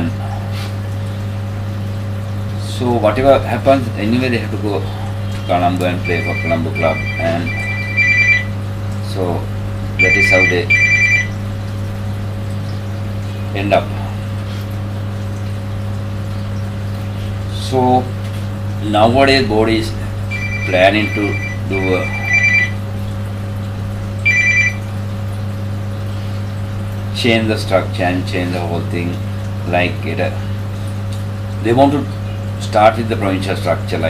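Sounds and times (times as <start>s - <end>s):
low electrical hum: 0.0s - 34.0s
electronic two-tone ringing: 6.0s - 8.6s, 10.0s - 11.4s, 20.3s - 22.8s, 24.2s - 24.9s.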